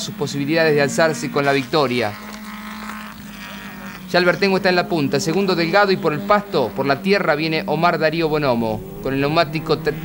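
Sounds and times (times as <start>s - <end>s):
race car engines: 0.0s - 10.0s.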